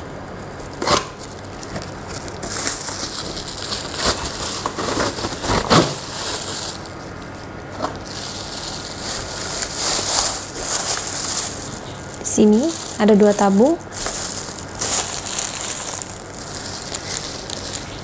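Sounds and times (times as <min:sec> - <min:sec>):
plastic bag crinkling: 0:00.5 - 0:18.0.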